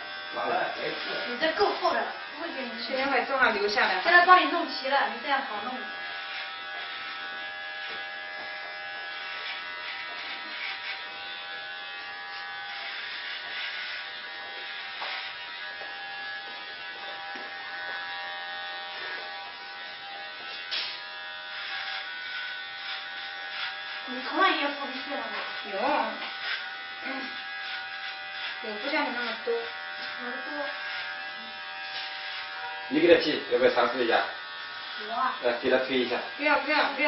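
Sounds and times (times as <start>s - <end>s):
electric hair clippers buzzing: 0.0s - 37.0s.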